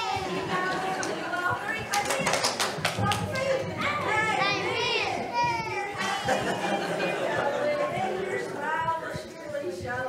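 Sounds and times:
hand claps: 0:01.8 - 0:03.5
young children chattering: 0:03.0 - 0:10.0.

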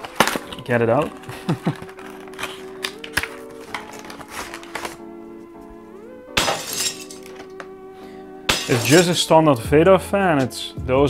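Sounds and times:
packaging rustling and crackling: 0:00.0 - 0:05.4
background music: 0:00.0 - 0:11.0.

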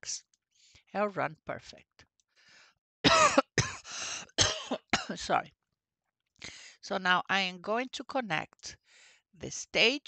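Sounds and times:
person coughing: 0:03.0 - 0:05.2.

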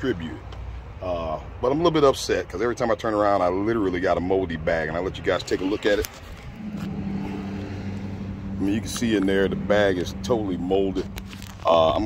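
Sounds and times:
vehicle engine idling: 0:05.6 - 0:12.0.

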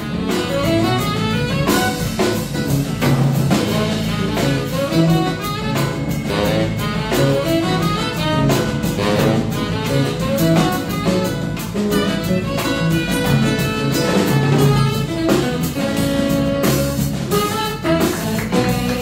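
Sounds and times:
live jazz band playing: 0:00.0 - 0:19.0.

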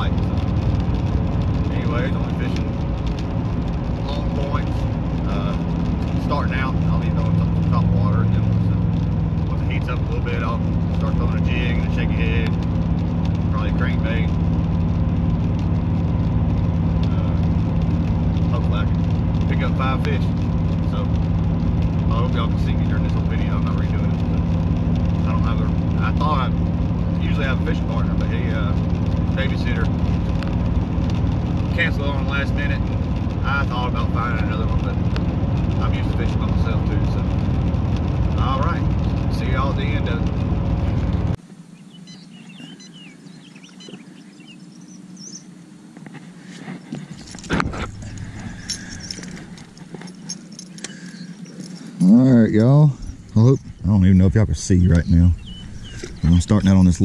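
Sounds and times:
vehicle engine and road noise: 0:00.0 - 0:57.0.

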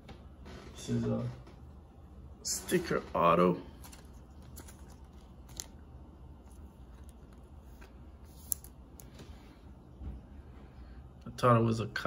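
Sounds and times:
plastic rustling: 0:02.7 - 0:09.2.

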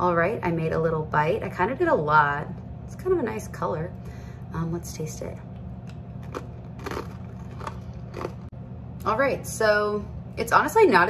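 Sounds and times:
crunching cracker: 0:05.9 - 0:08.5.

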